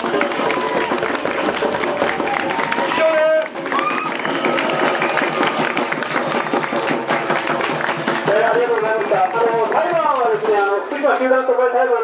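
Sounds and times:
crowd clapping: 0:00.0 - 0:11.2.

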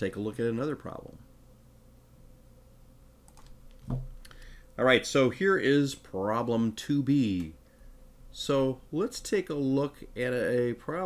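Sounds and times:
soft computer clicks: 0:03.2 - 0:04.5, 0:07.3 - 0:07.5.

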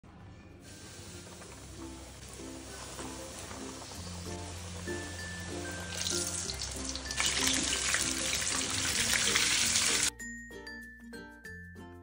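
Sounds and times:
light background music: 0:00.0 - 0:12.0
chicken sizzling in hot oil: 0:00.6 - 0:10.1.

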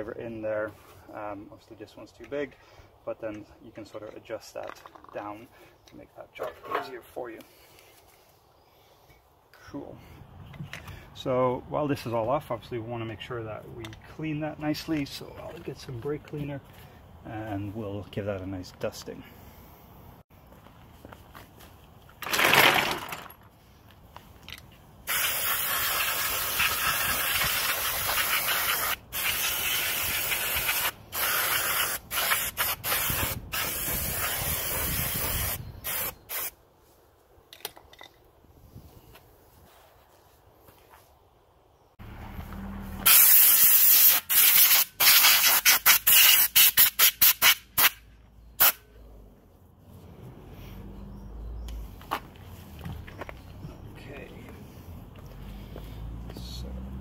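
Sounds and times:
aerosol spray bursts: 0:25.1 - 0:36.5, 0:43.0 - 0:48.0.

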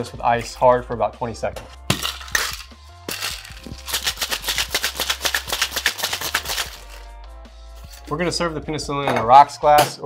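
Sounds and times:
quiet background music: 0:00.0 - 0:10.0
ice rattling in cocktail shaker: 0:02.0 - 0:07.0.

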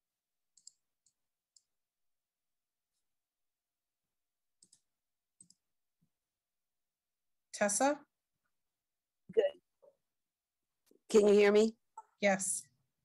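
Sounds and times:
computer mouse clicks: 0:00.5 - 0:01.7, 0:04.6 - 0:05.6.

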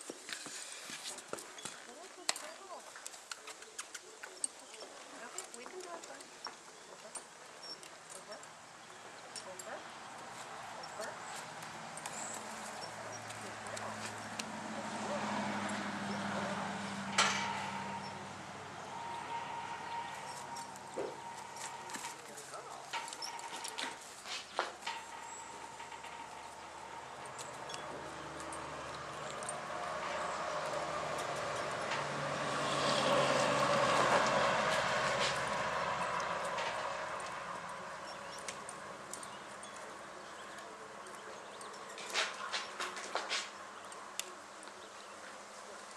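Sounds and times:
sharp knocks: 0:17.0 - 0:18.3
loud noise: 0:17.1 - 0:23.9.

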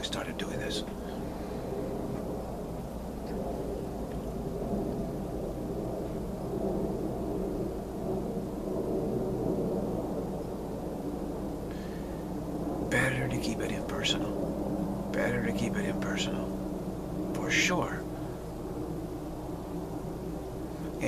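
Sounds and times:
man talking low and muffled: 0:00.0 - 0:01.1, 0:12.8 - 0:14.4, 0:15.1 - 0:16.6, 0:17.2 - 0:18.2, 0:20.8 - 0:21.0
steady low hum: 0:00.0 - 0:21.0.

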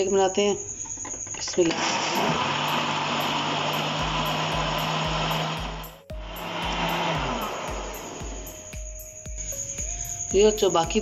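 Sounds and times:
electric blender running: 0:01.7 - 0:08.7.

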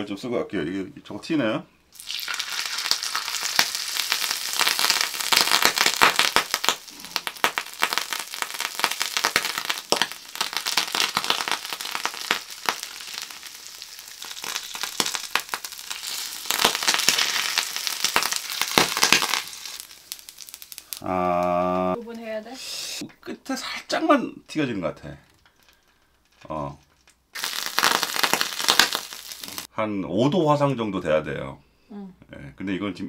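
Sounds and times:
hot oil sizzling and popping: 0:01.9 - 0:22.5, 0:25.2 - 0:29.7.

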